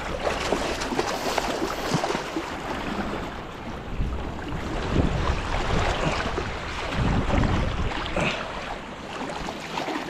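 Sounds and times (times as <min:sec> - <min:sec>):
fish splashing in water: 0:00.0 - 0:02.8
wind rumbling on microphone: 0:00.0 - 0:08.9
flowing river water: 0:00.0 - 0:10.0.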